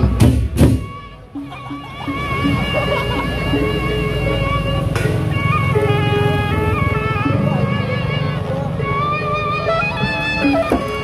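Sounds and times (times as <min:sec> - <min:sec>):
barrel drums beaten fast: 0:00.0 - 0:01.0
melody of held notes: 0:00.9 - 0:11.0.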